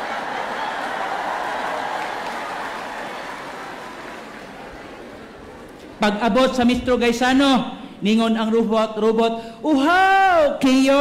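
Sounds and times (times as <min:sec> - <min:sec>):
congregation laughing: 0:00.0 - 0:05.9.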